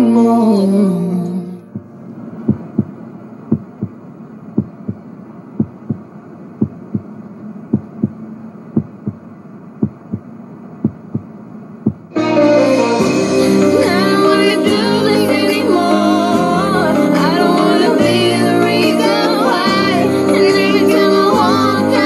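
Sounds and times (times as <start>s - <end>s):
faint steady hum: 0.0s - 12.2s
slow heartbeat thumps: 1.7s - 4.0s, 4.6s - 7.1s, 7.7s - 8.2s, 8.8s - 12.1s.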